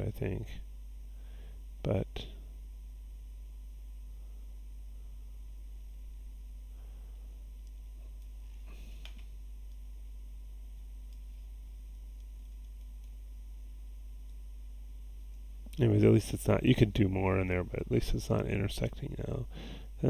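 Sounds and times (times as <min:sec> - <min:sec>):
low electrical hum and hiss: 0:00.0 - 0:20.0
computer mouse clicks: 0:12.2 - 0:13.2.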